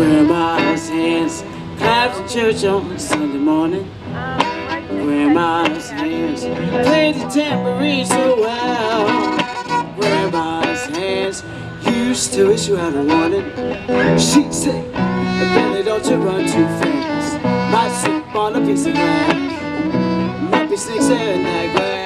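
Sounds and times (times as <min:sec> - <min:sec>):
guitar accompaniment: 0:00.0 - 0:22.0
person singing: 0:00.0 - 0:22.0
violin solo with sliding notes: 0:04.4 - 0:22.0.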